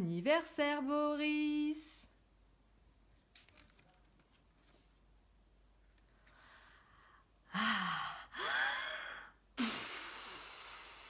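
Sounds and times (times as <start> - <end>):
person breathing in aloud: 6.4 - 11.0
person blowing out: 9.6 - 11.0.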